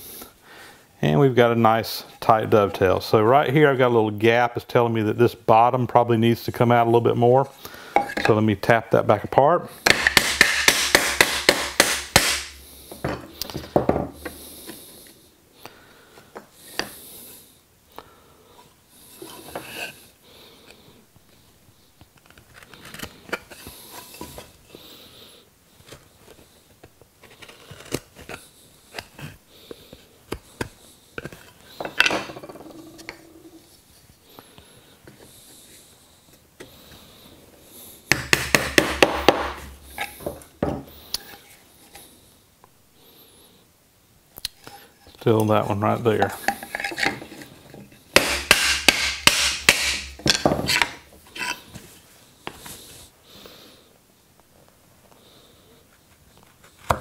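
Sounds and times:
wooden pieces knocking and rubbing: 9.8s - 14.8s, 25.8s - 35.7s, 38.1s - 42.1s, 44.6s - 51.9s
hammer tapping wood joint: 9.9s - 12.5s, 38.1s - 40.1s, 48.2s - 50.9s.

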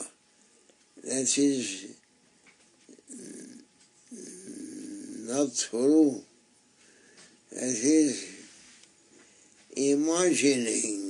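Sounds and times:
man speaking: 1.0s - 2.0s, 2.9s - 6.3s, 7.5s - 8.5s, 9.7s - 11.0s.

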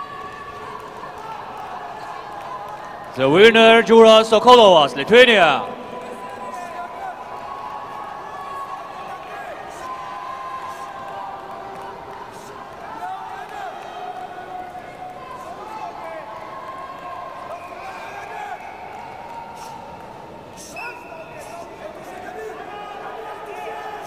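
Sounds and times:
voices shouting in a hall: 0.0s - 24.0s.

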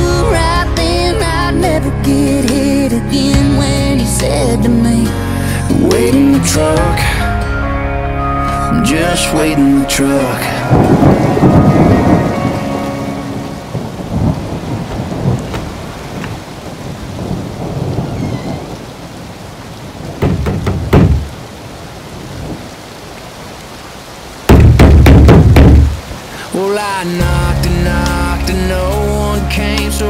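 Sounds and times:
rain falling: 0.0s - 7.4s, 8.4s - 30.0s
music: 0.0s - 13.8s, 26.5s - 30.0s
thunder: 10.6s - 19.1s.

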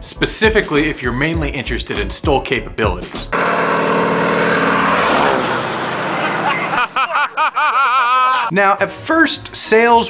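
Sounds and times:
propeller plane passing overhead: 3.4s - 6.8s.

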